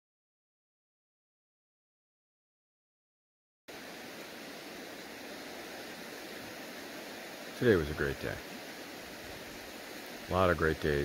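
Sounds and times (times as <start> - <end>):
steady background hiss: 3.7 - 11.0.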